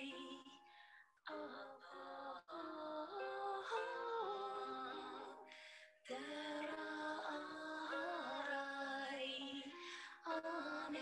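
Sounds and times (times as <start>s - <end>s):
woman singing long notes: 1.3s - 5.5s, 6.1s - 11.0s.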